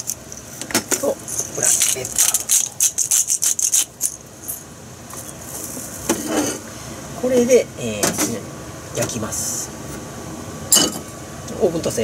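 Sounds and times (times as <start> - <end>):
plastic packaging crinkling: 1.3 - 4.2.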